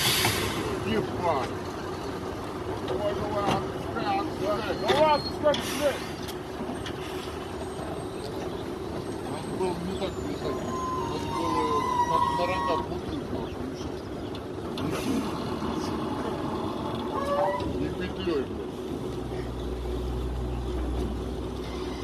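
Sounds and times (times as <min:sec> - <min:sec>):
indistinct voices: 0:06.9 - 0:18.6.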